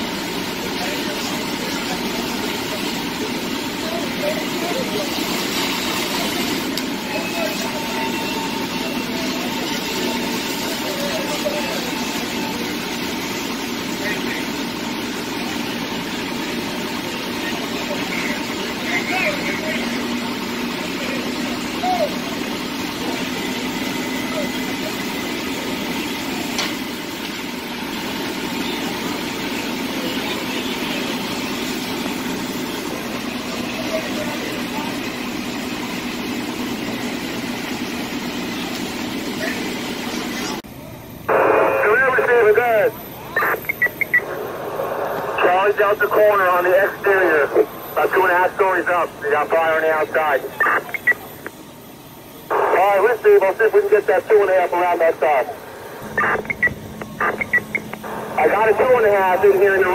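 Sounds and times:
fire truck engine running: 0:00.0 - 0:59.9
faint steady hum: 0:40.8 - 0:59.9.

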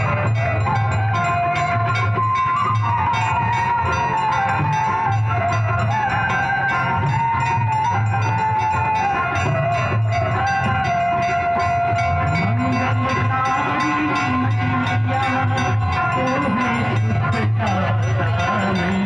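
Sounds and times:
metal percussion: 0:00.0 - 0:19.0
person singing long sliding notes: 0:00.0 - 0:19.0
pulsing drum beat: 0:00.0 - 0:19.0.

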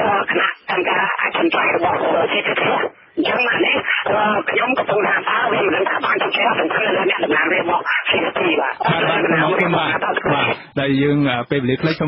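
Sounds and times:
man talking fast on radio: 0:00.0 - 0:12.0.

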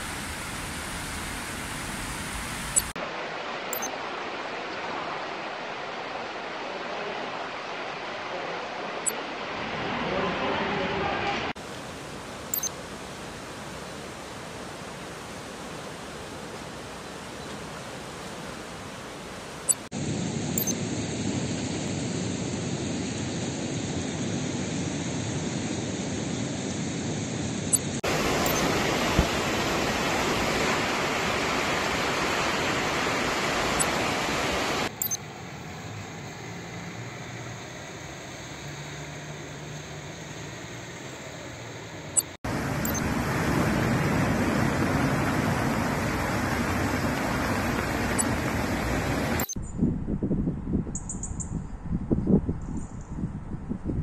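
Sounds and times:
flooded river rushing: 0:00.0 - 0:19.8, 0:28.0 - 0:49.5.

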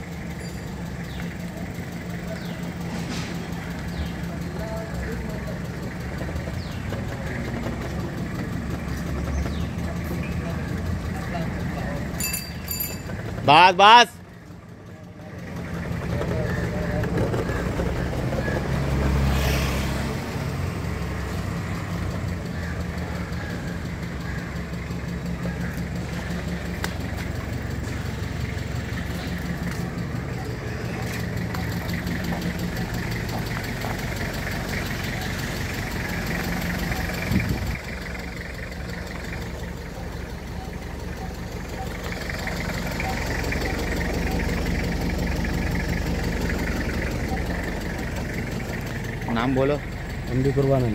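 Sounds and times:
vehicle engine running at low speed: 0:00.0 - 0:50.9.

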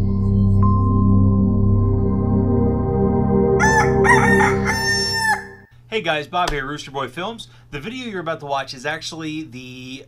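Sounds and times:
ambient music drone: 0:00.0 - 0:05.7
rooster crowing: 0:03.6 - 0:05.7.

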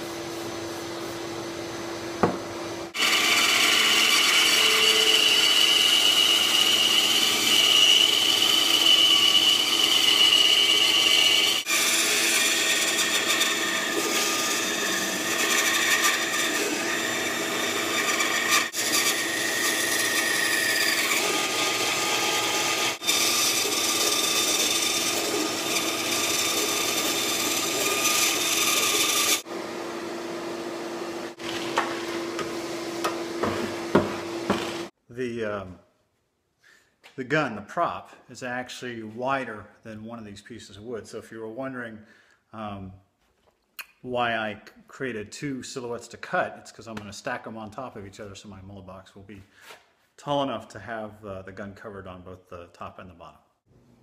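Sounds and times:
shop vac humming: 0:00.0 - 0:34.9
band saw cutting wood: 0:02.2 - 0:34.9.

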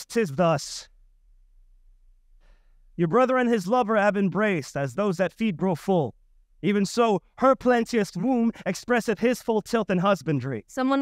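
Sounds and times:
low steady hum: 0:00.0 - 0:10.6
person drawing breath: 0:02.4 - 0:02.9.

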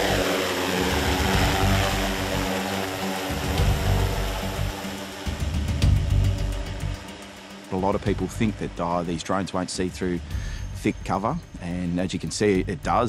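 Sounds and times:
drone rotors whining: 0:00.0 - 0:09.5.

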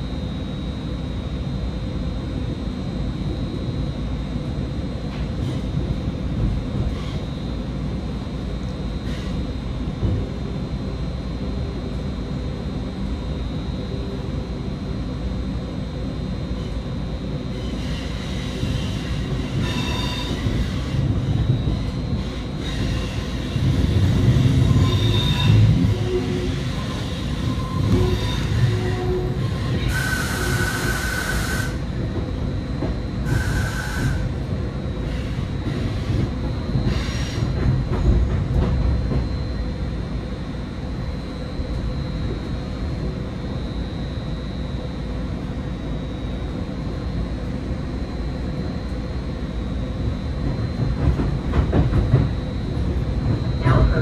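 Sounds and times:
train rumbling on rails: 0:00.0 - 0:54.0.

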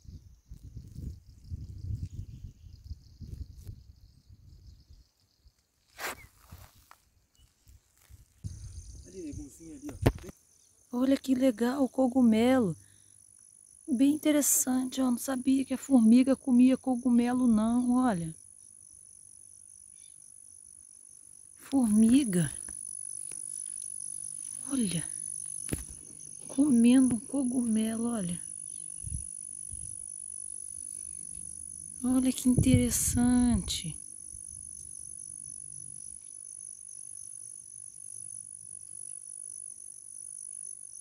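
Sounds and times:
crickets trilling: 0:00.0 - 0:41.0
insects droning: 0:00.0 - 0:41.0.

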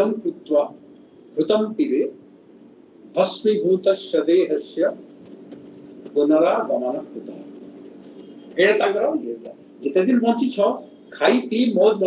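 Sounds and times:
man speaking: 0:00.0 - 0:00.8, 0:01.4 - 0:02.2, 0:03.1 - 0:05.0, 0:06.2 - 0:07.5, 0:08.6 - 0:12.0.

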